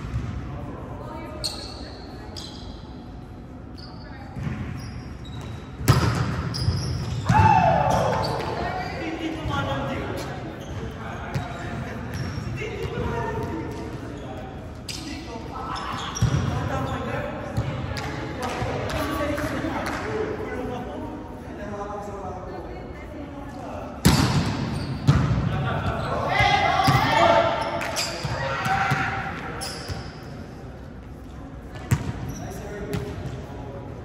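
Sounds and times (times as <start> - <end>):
players shouting: 7.2 - 9.0, 26.0 - 29.4.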